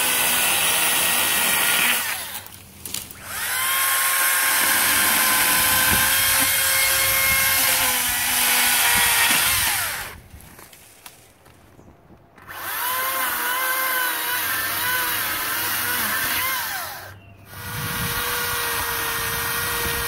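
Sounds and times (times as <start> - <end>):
electric chainsaw cutting tree: 0.0 - 10.2, 12.4 - 20.0.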